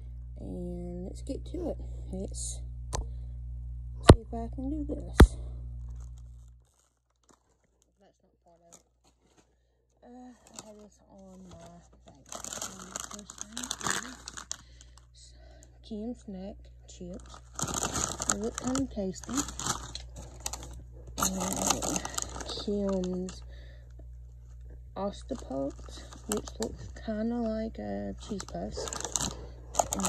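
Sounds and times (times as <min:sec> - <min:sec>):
low hum: 0:00.0 - 0:06.7, 0:09.6 - 0:30.0
plastic snack packaging crinkling: 0:05.9 - 0:09.5, 0:10.3 - 0:15.1, 0:17.1 - 0:23.6, 0:25.1 - 0:30.0.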